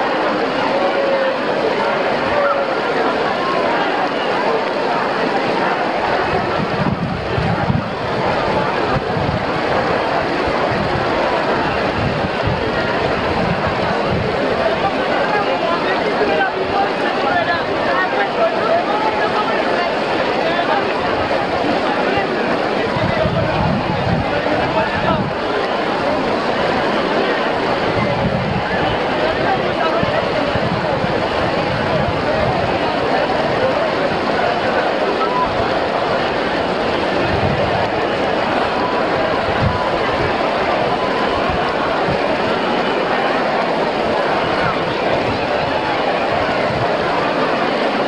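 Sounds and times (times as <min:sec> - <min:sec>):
fountain jets splashing: 0:00.0 - 0:48.0
large crowd chattering: 0:00.0 - 0:48.0
wind rumble on microphone: 0:06.2 - 0:14.9, 0:22.7 - 0:25.4, 0:27.5 - 0:34.2, 0:35.4 - 0:42.4, 0:44.4 - 0:47.2.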